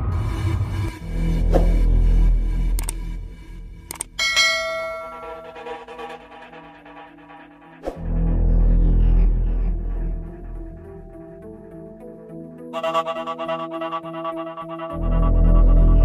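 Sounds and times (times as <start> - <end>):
bell-like chime: 4.2 - 6.6
electronic music with heavy bass: 5.1 - 11.9, 12.7 - 16.0.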